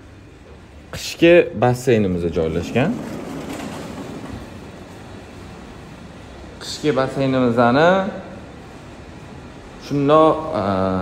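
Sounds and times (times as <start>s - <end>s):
sliding glass door rolling: 2.2s - 5.4s.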